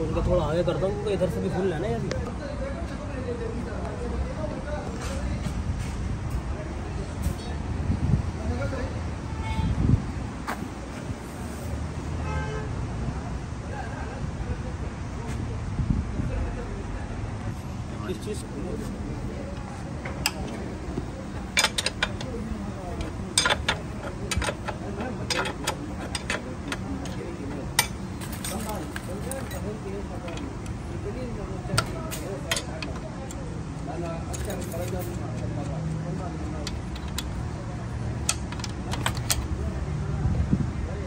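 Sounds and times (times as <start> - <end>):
metallic clicks of hand tools: 31.8 - 37.5, 38.2 - 39.5.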